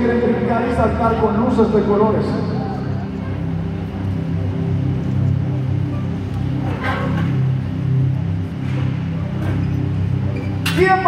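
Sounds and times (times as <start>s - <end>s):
keyboard playing low chords: 0.0s - 11.0s.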